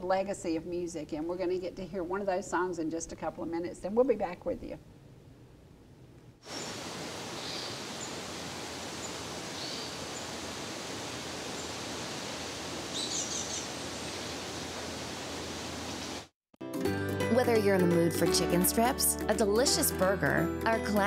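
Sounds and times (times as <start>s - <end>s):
bird chirps: 12.9s - 13.7s.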